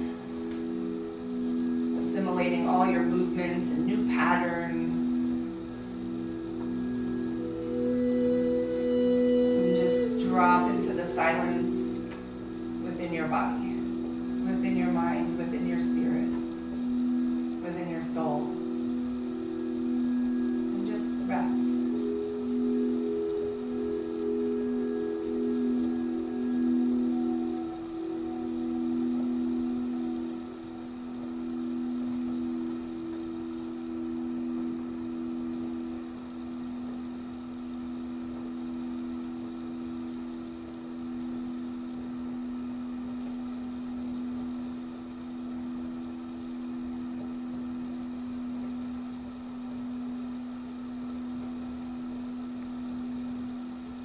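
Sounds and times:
singing bowl ringing: 0.0s - 54.0s.

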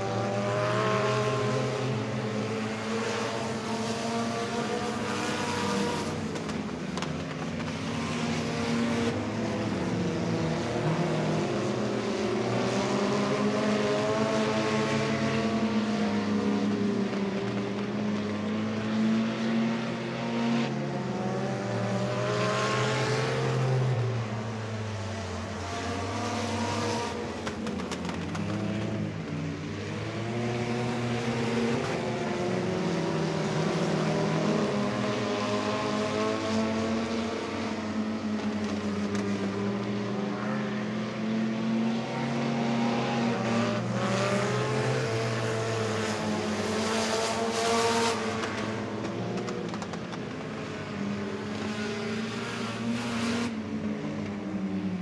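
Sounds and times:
race car engines: 0.0s - 55.0s.

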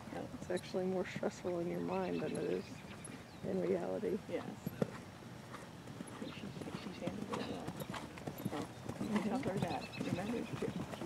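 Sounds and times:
horse hooves on sand: 0.5s - 11.0s.

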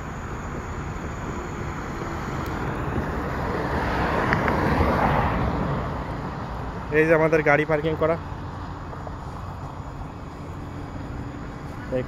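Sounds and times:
car driving past: 0.8s - 12.0s.

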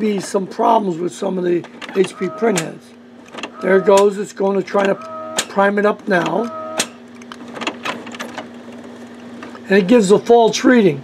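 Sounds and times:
printer humming: 0.0s - 11.0s
printer mechanical clicks: 1.6s - 9.6s.

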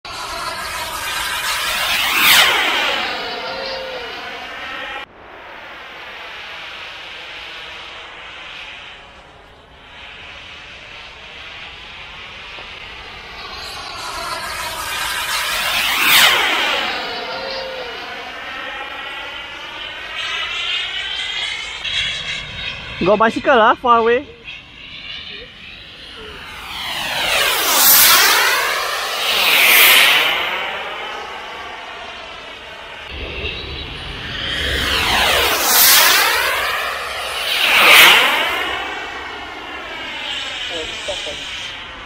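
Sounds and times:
faint steady jet whine: 0.0s - 42.0s
model jet whine passing by: 0.0s - 42.0s.

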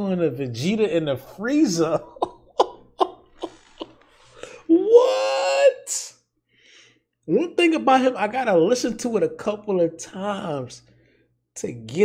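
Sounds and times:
man laughing: 1.4s - 5.7s.

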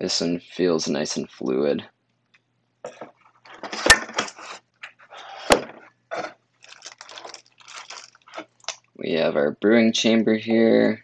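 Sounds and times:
packaging and plastic wrap rustling: 2.9s - 8.8s.

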